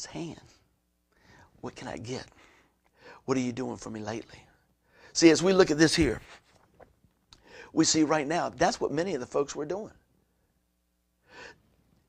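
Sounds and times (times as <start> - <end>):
man breathing in: 11.2 - 11.7.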